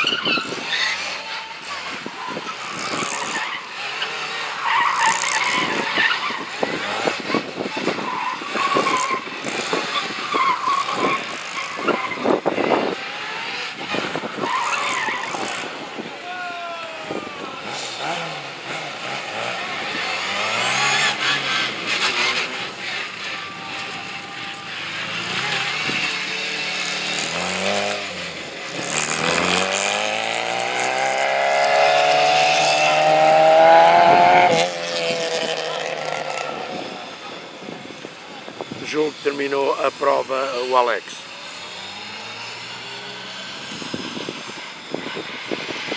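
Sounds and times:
tyres squealing and skidding: 0.0 - 45.9
car engine revving: 17.1 - 45.9.

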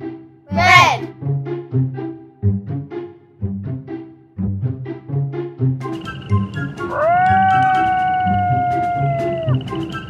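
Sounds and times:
background music: 0.0 - 10.0
cat meowing: 6.9 - 9.6.

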